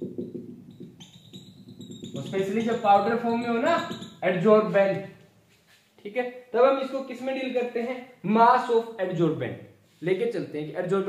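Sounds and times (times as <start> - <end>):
marker tapping on whiteboard: 0.0 - 4.3.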